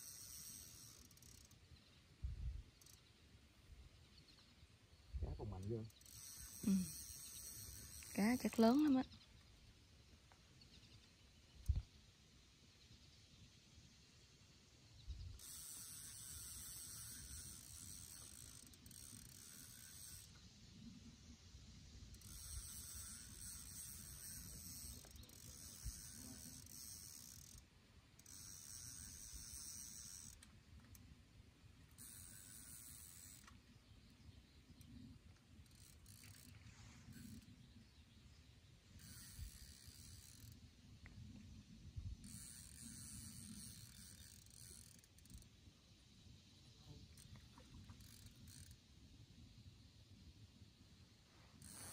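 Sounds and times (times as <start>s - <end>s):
fishing reel whirring: 0.0s - 1.8s, 2.6s - 3.1s, 5.3s - 9.2s, 15.2s - 20.7s, 21.9s - 37.8s, 38.8s - 40.8s, 42.0s - 45.7s, 47.1s - 49.1s, 51.5s - 51.9s.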